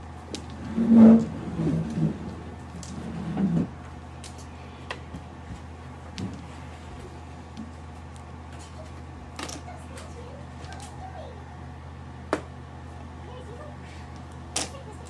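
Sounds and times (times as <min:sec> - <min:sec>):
low hum: 0:00.0 - 0:15.0.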